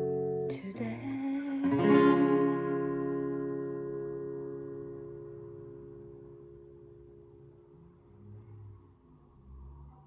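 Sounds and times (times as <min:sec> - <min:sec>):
acoustic guitar chord: 0:00.0 - 0:07.7.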